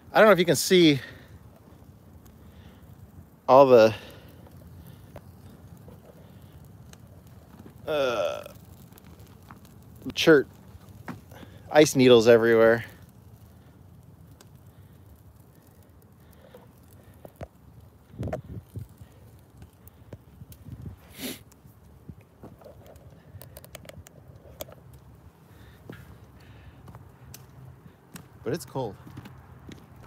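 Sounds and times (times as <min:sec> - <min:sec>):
fire crackling: 0:00.0 - 0:30.0.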